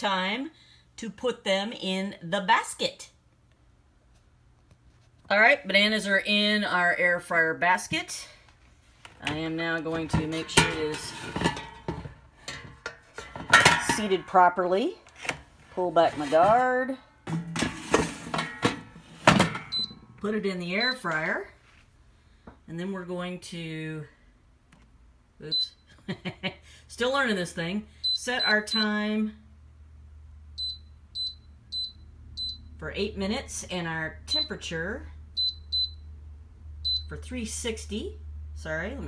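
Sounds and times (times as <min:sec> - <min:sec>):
air fryer basket clattering: 0:09.9 - 0:14.6, 0:17.3 - 0:19.9
short high-pitched beeps: 0:30.6 - 0:32.7.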